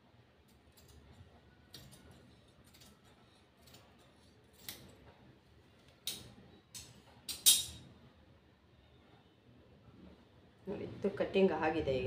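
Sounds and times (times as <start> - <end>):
scissors snipping fabric: 1.7 - 5.0.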